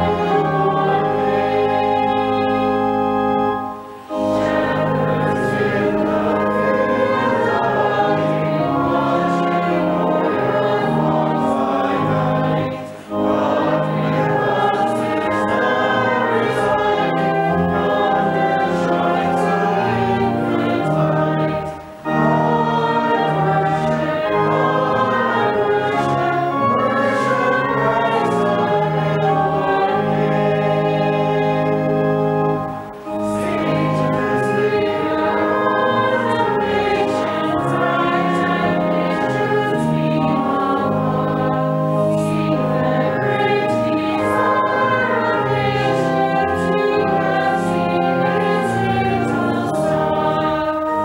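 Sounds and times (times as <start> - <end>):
organ accompaniment: 0.0 - 51.0
voices singing a hymn: 0.0 - 51.0.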